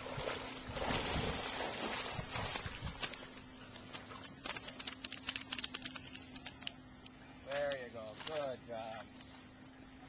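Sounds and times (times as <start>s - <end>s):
water splashing: 0.0s - 6.7s.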